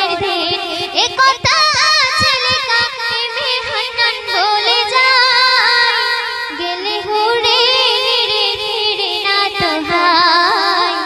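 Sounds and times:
quick low beat: 0.0 - 5.0
girl singing into a microphone: 0.0 - 11.0.

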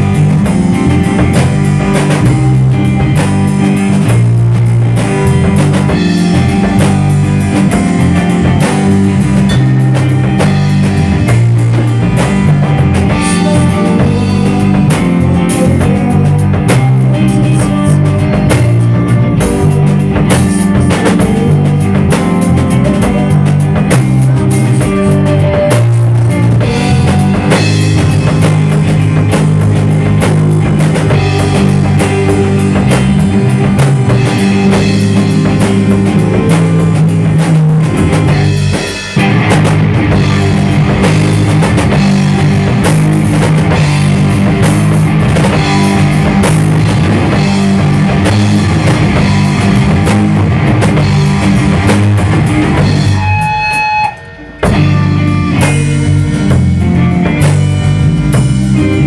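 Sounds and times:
rock band playing: 0.0 - 59.0.

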